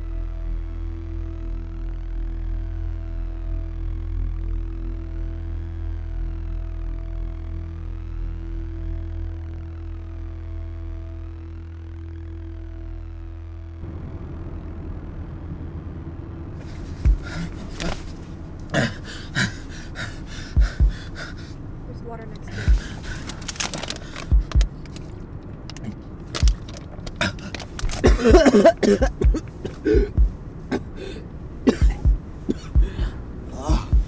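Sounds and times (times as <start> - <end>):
low steady drone: 0.0 - 34.0
sharp knocks and low thumps: 17.0 - 18.1, 20.6 - 21.1, 24.2 - 24.9, 26.4 - 27.2, 28.0 - 30.4, 31.8 - 34.0.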